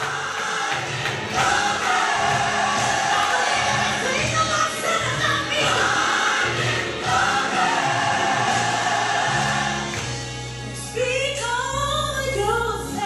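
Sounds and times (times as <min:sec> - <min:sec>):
gospel choir singing: 0:00.0 - 0:10.8.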